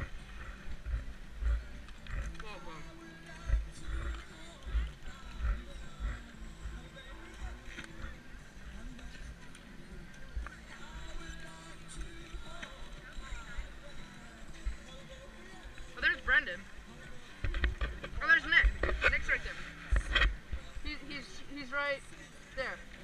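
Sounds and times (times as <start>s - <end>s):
faint background music: 0.0s - 23.0s
indistinct voices: 0.0s - 23.0s.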